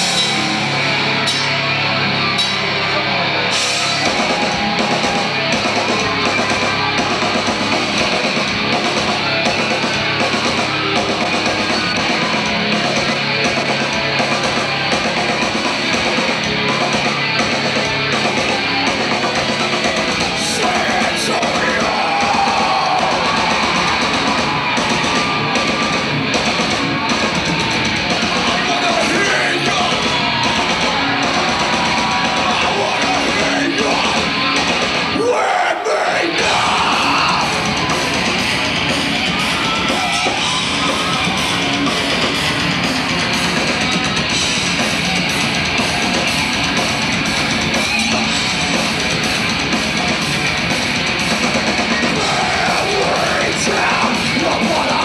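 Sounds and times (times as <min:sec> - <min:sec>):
heavy metal band playing live: 0:00.0 - 0:55.0.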